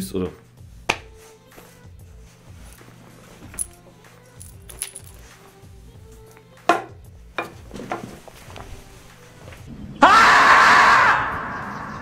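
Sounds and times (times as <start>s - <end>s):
loud drawn-out scream: 9.9s - 12.0s.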